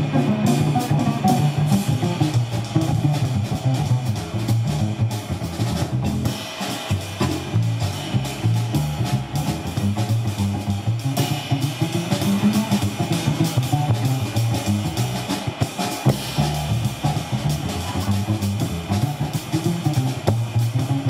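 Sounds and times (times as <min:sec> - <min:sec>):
drum kit with cymbals: 0:00.0 - 0:21.0
plucked double bass: 0:00.0 - 0:21.0.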